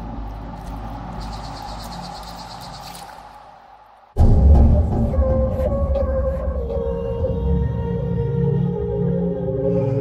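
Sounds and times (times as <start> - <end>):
ambient music with low tones: 0.0 - 10.0.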